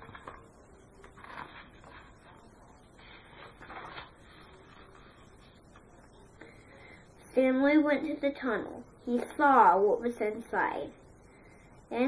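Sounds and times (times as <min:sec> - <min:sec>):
book pages rustling: 0:00.0 - 0:02.4, 0:03.0 - 0:05.9.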